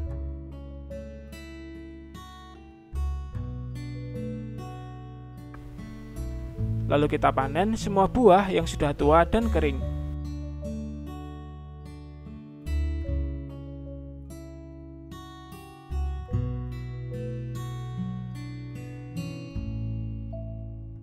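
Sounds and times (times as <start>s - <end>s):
acoustic guitar playing: 0.0s - 21.0s.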